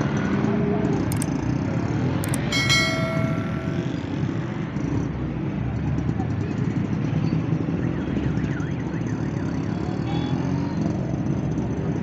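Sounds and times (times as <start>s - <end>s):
traffic engines rumbling: 0.0s - 12.0s
metallic bell ring: 2.2s - 4.2s.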